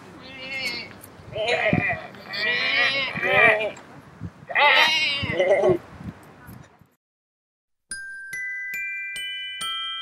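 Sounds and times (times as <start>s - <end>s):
people imitating sheep bleating: 4.5s - 5.8s.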